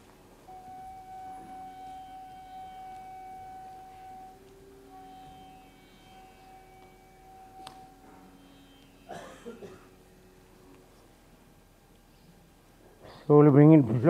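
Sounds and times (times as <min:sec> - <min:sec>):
quiet background music: 0:00.0 - 0:14.0.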